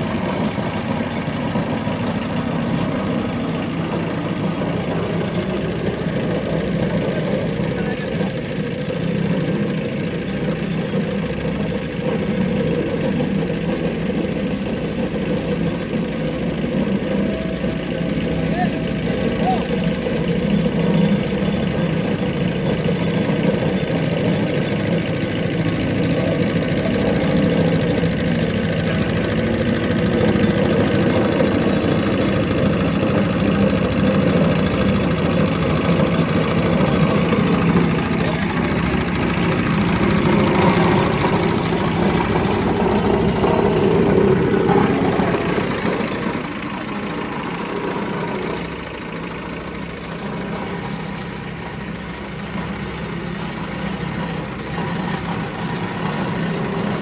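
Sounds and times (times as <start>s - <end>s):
road roller engine running: 0.0s - 57.0s.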